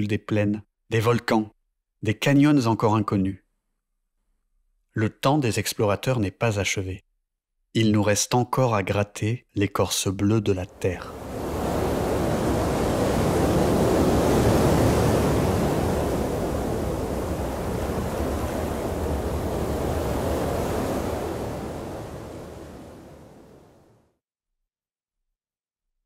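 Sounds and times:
wind: 0:10.7 - 0:23.9
waves breaking: 0:10.7 - 0:24.0.

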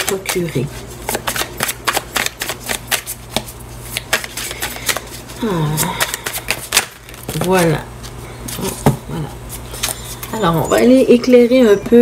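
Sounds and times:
cards being shuffled: 0:00.0 - 0:10.4.

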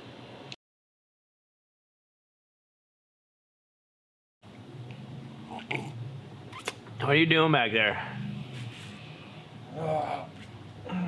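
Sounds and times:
low room hum: 0:04.4 - 0:11.0.

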